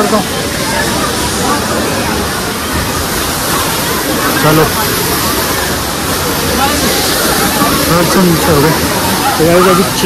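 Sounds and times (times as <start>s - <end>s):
shallow water running over concrete: 0.0s - 10.0s
waterfall rushing: 0.0s - 10.0s.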